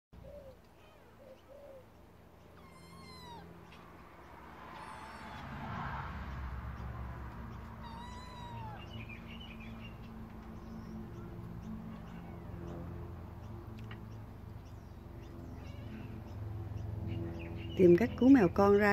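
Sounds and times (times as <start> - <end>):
kitten chirping calls: 0.2 - 17.7
low background rumble: 0.2 - 18.9
kitten meowing: 2.5 - 3.8, 4.7 - 5.6, 7.5 - 9.0, 11.9 - 12.6, 15.5 - 16.4.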